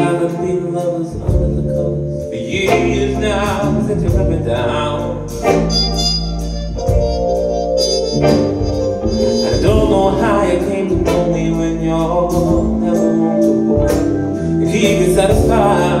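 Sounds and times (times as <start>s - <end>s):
live soul band instrumental: 0.0s - 16.0s
sustained keyboard chords: 0.0s - 16.0s.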